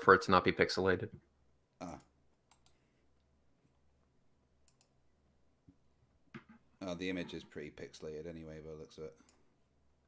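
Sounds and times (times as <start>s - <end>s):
faint computer clicks: 1.8s - 2.8s, 4.6s - 5.0s.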